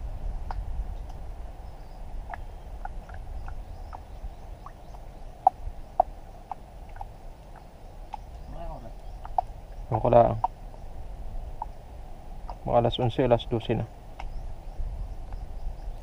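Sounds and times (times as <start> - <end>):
low steady rumble: 0.0 - 16.0.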